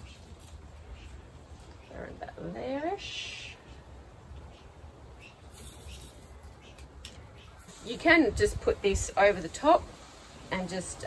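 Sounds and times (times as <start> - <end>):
light ticks and rustles: 0.0 - 2.0, 5.3 - 8.2.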